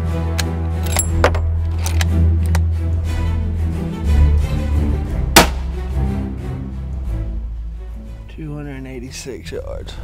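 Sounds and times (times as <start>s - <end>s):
background music: 0.0s - 10.0s
rifle shot: 5.4s - 5.7s.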